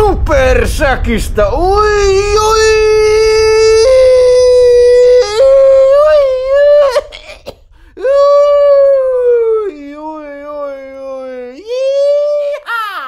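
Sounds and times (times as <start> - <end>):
man yelling with joy: 1.6 - 7.1, 8.0 - 13.0.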